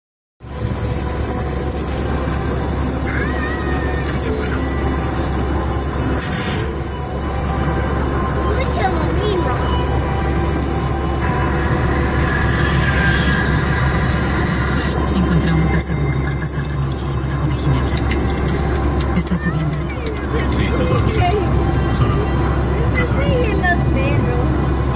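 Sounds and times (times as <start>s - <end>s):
car road and engine noise: 0.4s - 24.9s
faint voices: 0.5s - 24.9s.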